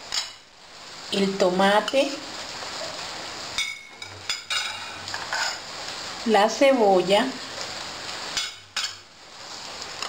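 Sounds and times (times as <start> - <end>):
frying hiss: 0.0 - 10.0
plate clinking against pot: 3.6 - 5.6.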